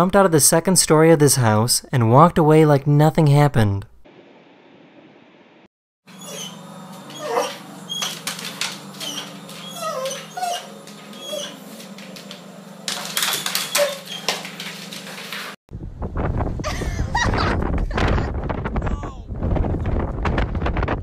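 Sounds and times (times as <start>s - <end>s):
dog whining: 6.1s - 11.9s, 13.4s - 14.5s
wind buffeting microphone: 15.7s - 21.0s.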